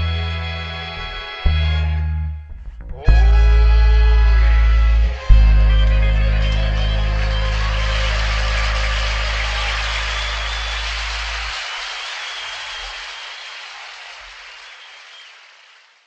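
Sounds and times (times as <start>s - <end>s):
upright bass low note: 0.0s - 11.5s.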